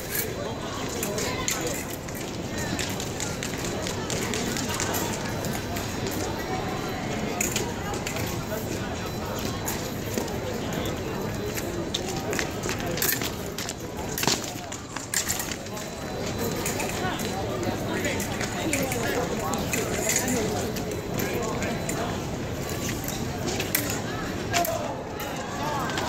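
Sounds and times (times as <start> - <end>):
crowd chatter in a hall: 0.0 - 26.0
fencing footwork and blade clicks: 11.5 - 17.4, 22.6 - 26.0.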